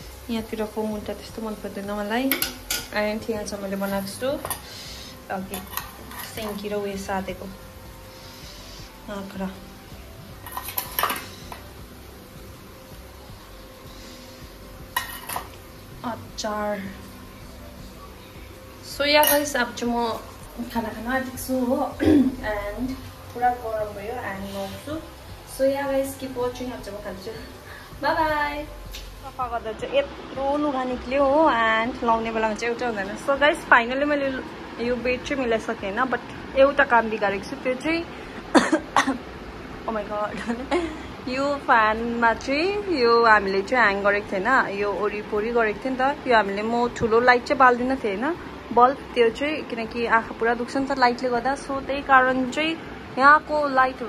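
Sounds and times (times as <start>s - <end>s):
steel spoon clinking on bowl: 19.2s - 19.6s
woman coughing: 22.0s - 22.5s, 38.5s - 39.2s.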